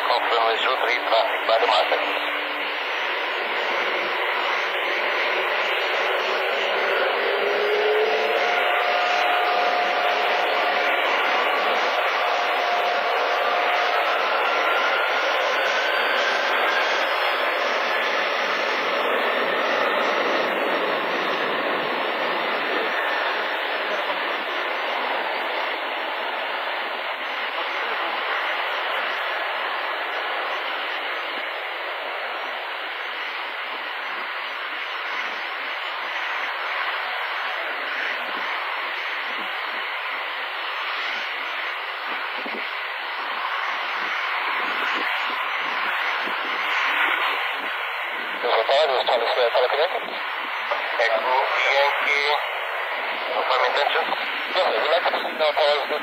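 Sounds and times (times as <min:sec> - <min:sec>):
jet engines spooling up: 0:00.0 - 0:56.0.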